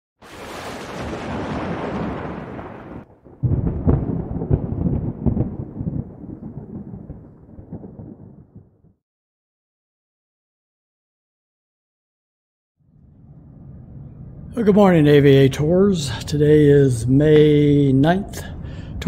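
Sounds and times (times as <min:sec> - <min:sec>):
loud low rumble with crackles: 0:01.0 - 0:08.9.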